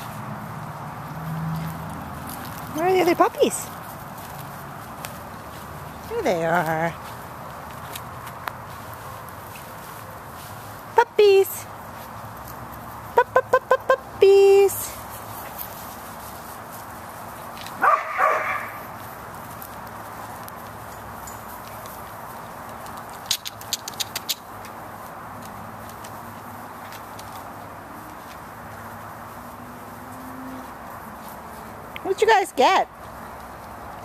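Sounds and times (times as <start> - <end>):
puppies yipping and barking: 17.8 - 18.8.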